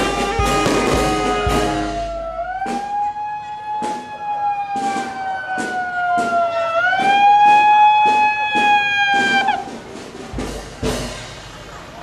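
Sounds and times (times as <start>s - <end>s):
siren wailing: 0.0s - 9.6s
drum beating: 0.0s - 12.0s.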